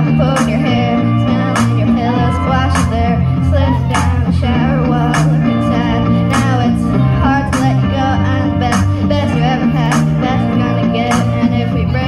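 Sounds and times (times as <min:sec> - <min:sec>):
girls singing into microphones: 0:00.0 - 0:12.0
karaoke backing track: 0:00.0 - 0:12.0.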